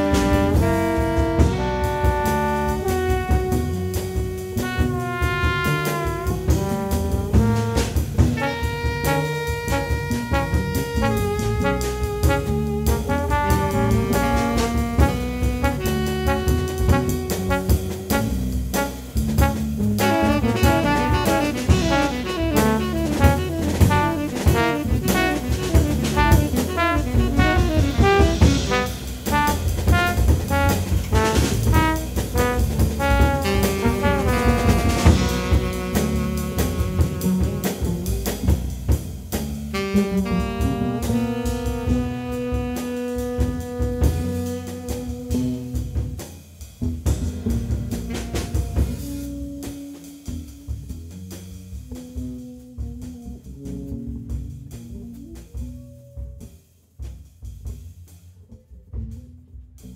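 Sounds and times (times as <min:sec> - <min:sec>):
tenor saxophone: 0:00.0 - 0:38.4, 0:39.7 - 0:45.9, 0:48.0 - 0:50.6
trombone: 0:00.0 - 0:39.1, 0:39.7 - 0:46.2, 0:46.8 - 0:50.7, 0:51.4 - 0:56.0
electric bass: 0:00.0 - 0:56.6, 0:57.7 - 0:59.9
drums with busy cymbals: 0:00.0 - 0:58.3.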